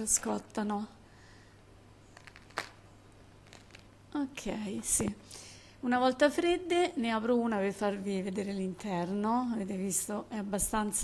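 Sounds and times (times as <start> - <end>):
bread crust crackling: 2.0 - 4.1.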